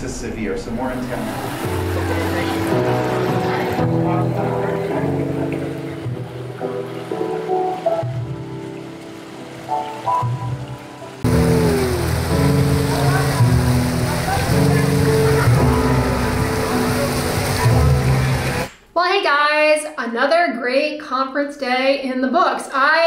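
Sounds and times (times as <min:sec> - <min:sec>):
music of held notes: 0:00.9 - 0:18.7.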